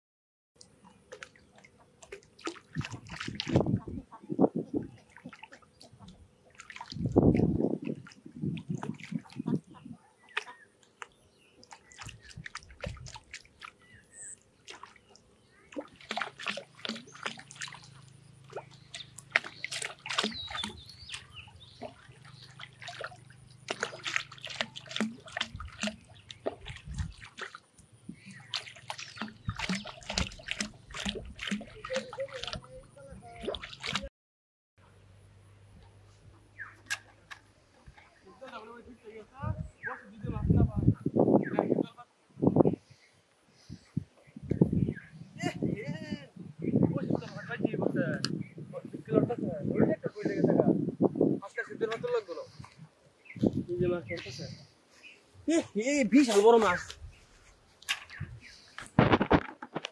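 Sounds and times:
fish splashing in water: 0.6 - 3.9, 4.8 - 34.1.

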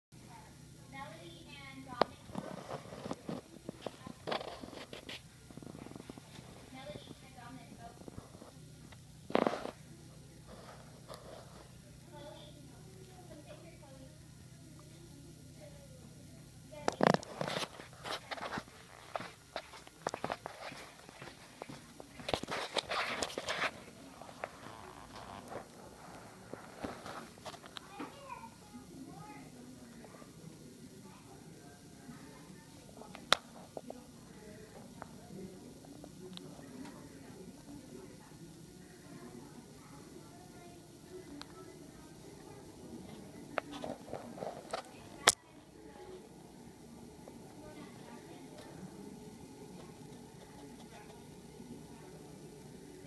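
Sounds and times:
young children's voices: 27.8 - 29.6.

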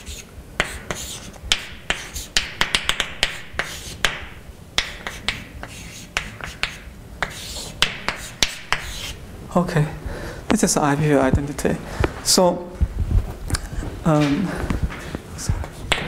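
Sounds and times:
chalk tapping and scratching: 0.0 - 9.2, 14.9 - 16.0.

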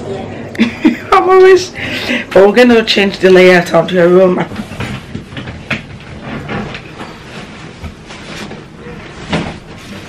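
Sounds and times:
bedding rustling: 3.4 - 10.0.

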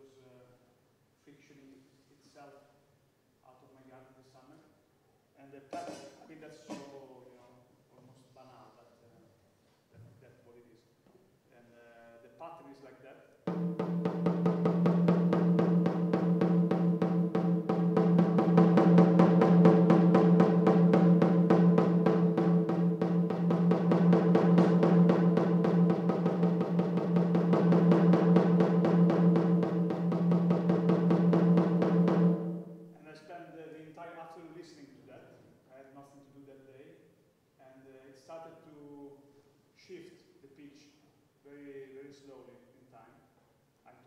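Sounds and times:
gong drum rapid mallet strokes: 13.5 - 33.0.

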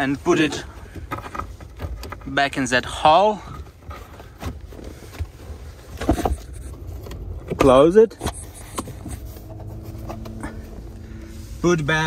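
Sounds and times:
low handling rumble: 0.0 - 12.0.

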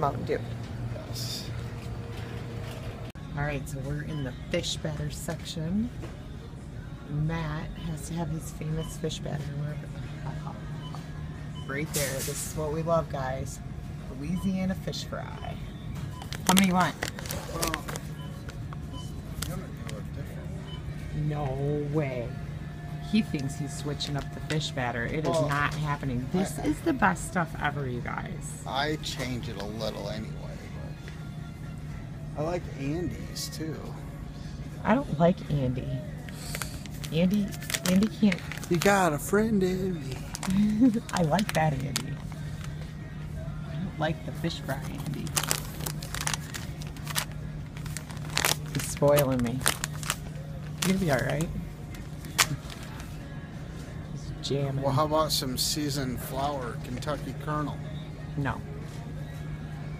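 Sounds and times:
faint music: 0.0 - 59.9
bag crinkling: 16.2 - 18.6, 36.3 - 42.8, 44.8 - 53.1.

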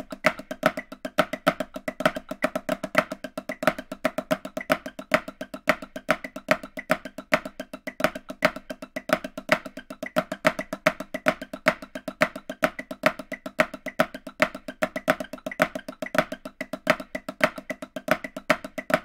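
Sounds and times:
snare drum played with sticks: 0.0 - 19.0.

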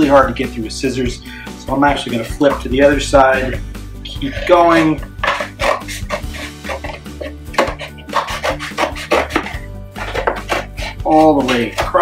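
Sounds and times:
scissors snipping paperboard: 7.6 - 12.0.

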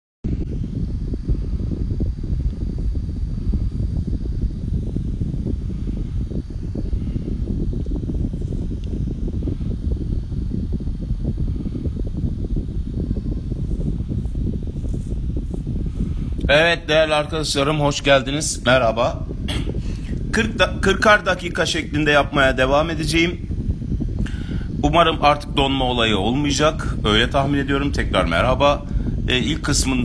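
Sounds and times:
low rumbling noise: 0.2 - 30.0.

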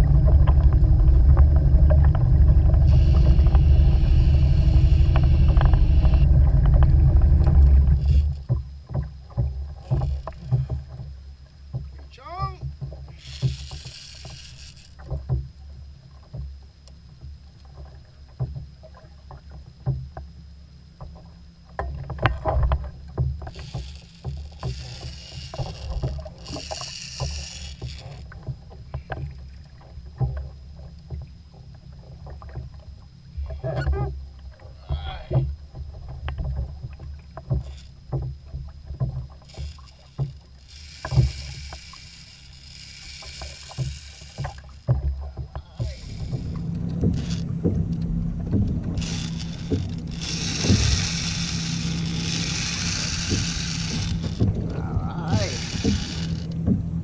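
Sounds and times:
water and wind rumble: 0.0 - 57.0
fishing reel clicks and knocks: 13.1 - 15.1, 23.4 - 28.3, 39.4 - 44.9, 45.5 - 54.5, 55.2 - 56.7.

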